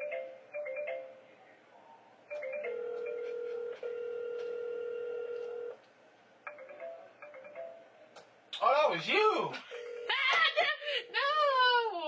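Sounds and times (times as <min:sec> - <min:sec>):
phone ringtone notes: 0:00.0 - 0:01.3, 0:02.3 - 0:05.7, 0:06.5 - 0:08.0.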